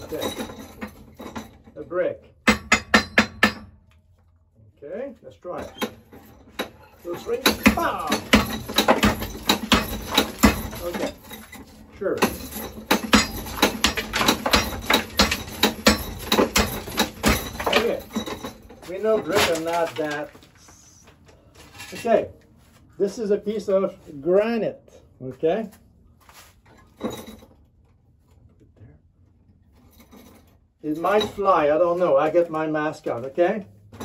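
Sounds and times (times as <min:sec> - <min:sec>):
hammer striking brick: 0:02.4 - 0:03.8, 0:07.4 - 0:11.0, 0:12.2 - 0:17.9
stone knocking on metal anvil: 0:02.4 - 0:03.8.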